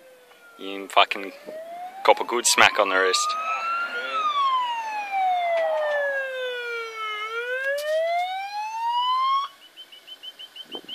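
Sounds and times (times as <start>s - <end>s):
ambulance siren wailing: 0.0s - 9.6s.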